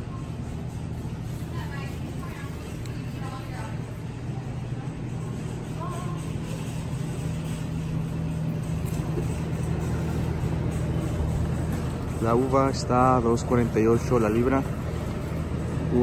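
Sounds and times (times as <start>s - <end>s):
shopping cart rolling: 0.0s - 16.0s
store hum: 0.0s - 16.0s.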